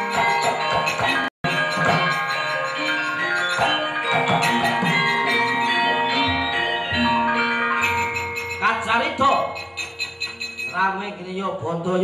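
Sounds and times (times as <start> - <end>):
sharp percussive strikes: 0.0 - 11.0
gamelan metallophones ringing: 0.0 - 11.4.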